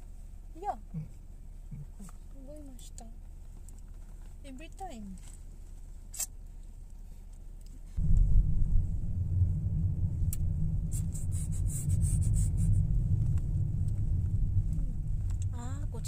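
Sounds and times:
low rumble inside car cabin: 0.0s - 16.0s
low hum: 7.9s - 16.0s.

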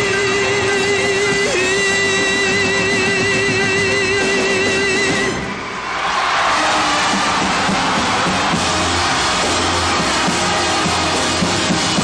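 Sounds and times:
man singing with vibrato: 0.0s - 5.5s.

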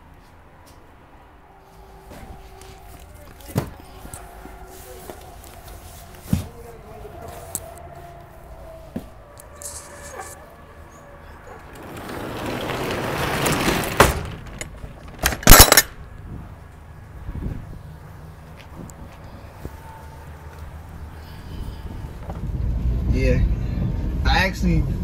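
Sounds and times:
metal ramp scraping in track: 11.4s - 15.8s
loud metallic clanks: 12.8s - 16.0s.

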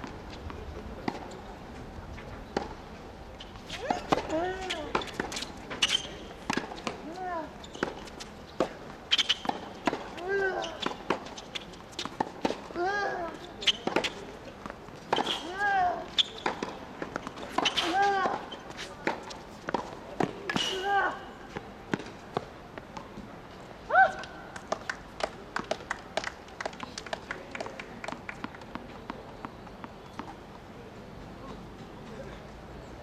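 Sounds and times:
shoe squeaks: 3.4s - 9.8s, 10.4s - 12.2s, 13.0s - 14.3s, 15.0s - 19.0s.

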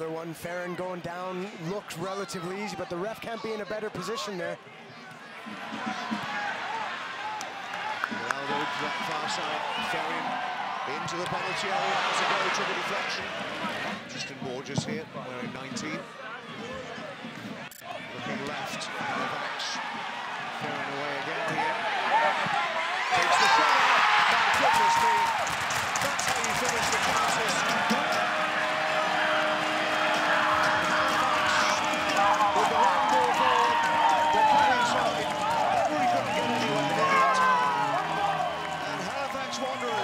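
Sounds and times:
stadium crowd cheering: 0.0s - 40.0s
voices shouting: 5.0s - 14.0s, 21.3s - 40.0s.

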